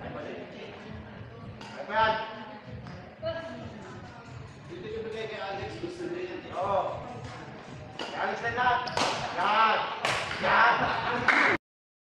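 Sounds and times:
racket striking shuttlecock: 8.0 - 8.2.

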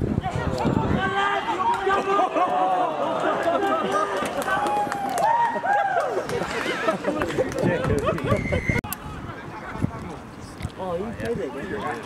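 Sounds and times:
crowd shouting and yelling: 0.0 - 6.6.

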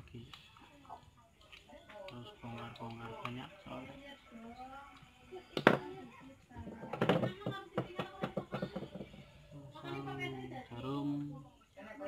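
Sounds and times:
sharp knock on wooden table: 6.9 - 9.1.

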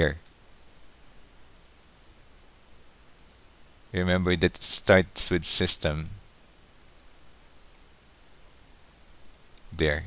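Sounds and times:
computer mouse clicks: 0.0 - 0.5, 1.6 - 2.3, 8.1 - 9.7
low room hiss: 0.0 - 10.0.

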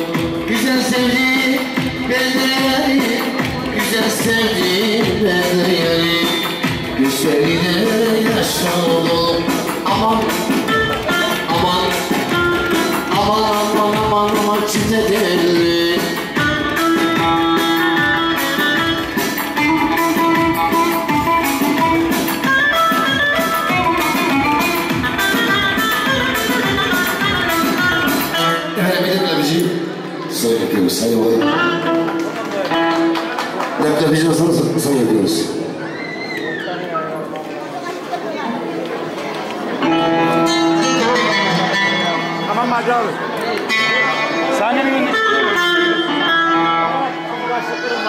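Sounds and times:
folk dance music: 0.0 - 36.3, 38.6 - 48.0
plucked string melody: 39.8 - 47.6.

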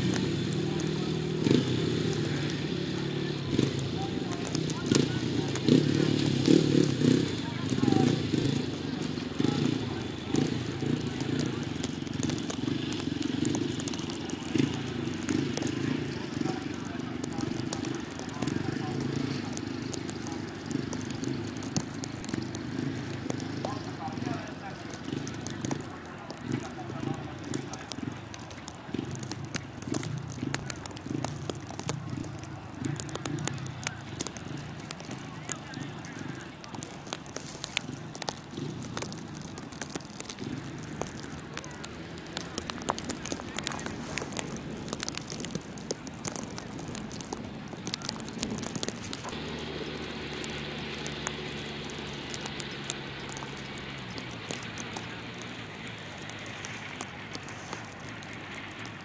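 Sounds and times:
faint clicks and crackles: 0.0 - 59.0
motorcycle engine running: 0.0 - 59.0.

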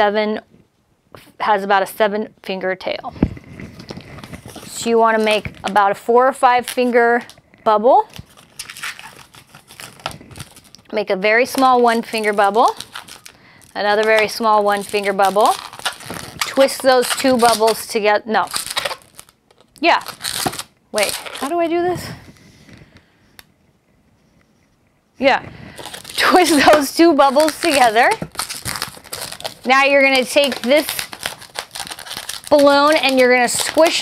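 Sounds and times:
balloon squeaking: 8.2 - 10.8, 11.5 - 21.8, 25.8 - 34.0.

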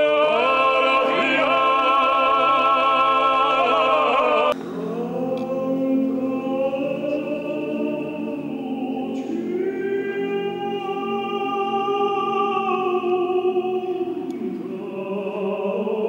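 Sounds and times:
male choir singing a cappella: 0.0 - 16.0.

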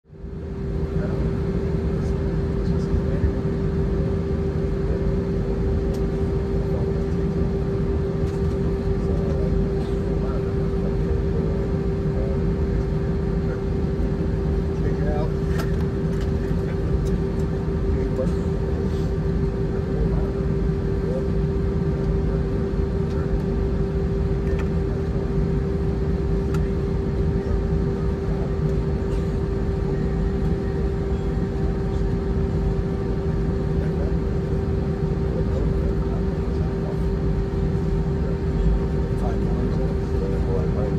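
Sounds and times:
aircraft engines idling: 0.1 - 40.9
constant hum-like tone: 0.1 - 40.9.

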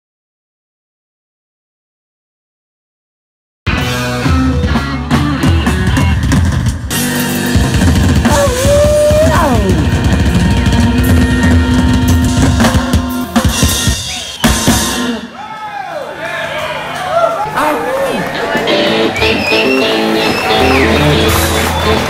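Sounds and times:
electric bass: 3.7 - 14.0, 18.3 - 22.0
electric guitar: 3.7 - 15.3, 17.7 - 22.0
drum kit: 3.7 - 15.4, 18.6 - 22.0.

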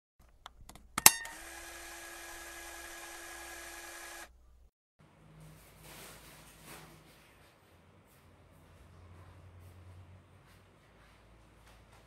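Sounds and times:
tape mechanism whirring: 0.3 - 4.7
camcorder clicks: 0.7 - 4.3.

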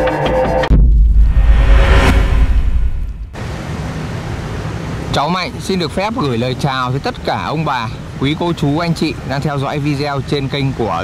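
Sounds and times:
steady outdoor hiss: 0.4 - 11.0
intro music low end: 0.7 - 3.4.

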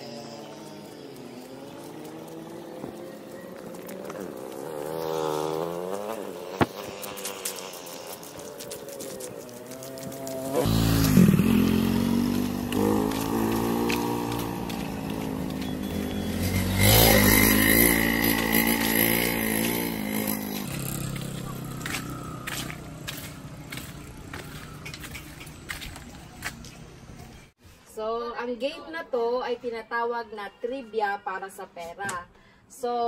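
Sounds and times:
motorcycle passing close: 0.0 - 26.5
vehicle engines revving: 0.0 - 27.4.

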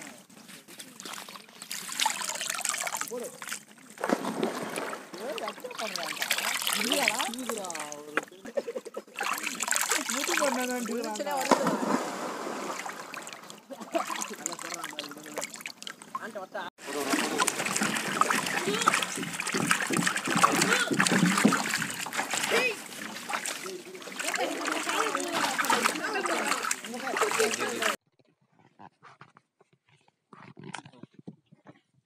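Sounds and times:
water splashing and trickling: 0.0 - 28.0
voices talking: 5.1 - 12.1, 13.1 - 28.0.

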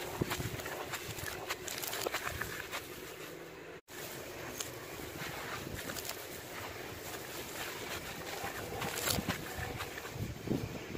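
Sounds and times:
charcoal powder crunching: 0.0 - 3.4, 4.0 - 10.5.

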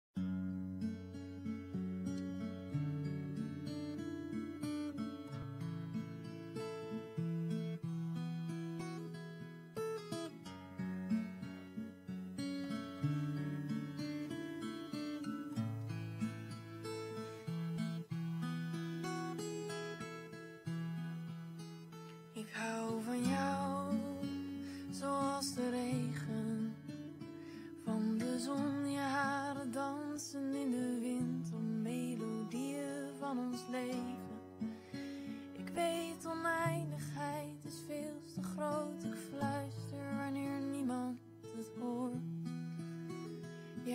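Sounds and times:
acoustic guitar picking: 0.2 - 43.9
person singing: 22.4 - 27.1, 27.7 - 34.8, 35.5 - 42.2.

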